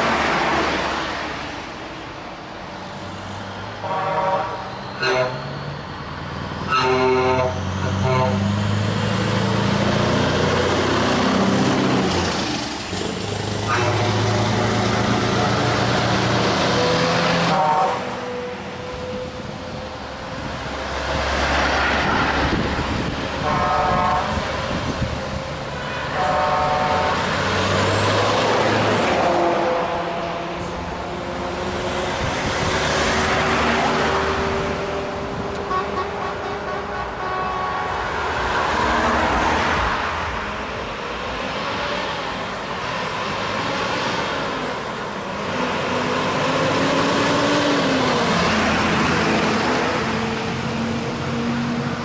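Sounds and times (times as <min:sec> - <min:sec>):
vehicles driving past: 0:00.0 - 0:52.0
vehicle horns: 0:03.8 - 0:05.6, 0:06.7 - 0:08.5, 0:13.6 - 0:14.6, 0:17.4 - 0:19.3, 0:23.4 - 0:24.4, 0:25.9 - 0:27.3, 0:35.5 - 0:38.4.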